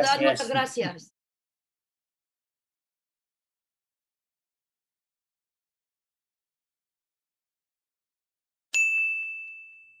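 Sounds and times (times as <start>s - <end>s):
bright chime: 8.8s - 10.0s.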